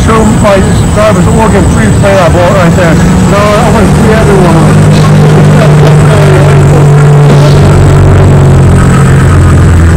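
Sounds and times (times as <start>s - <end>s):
car engine idling: 0.0s - 9.9s.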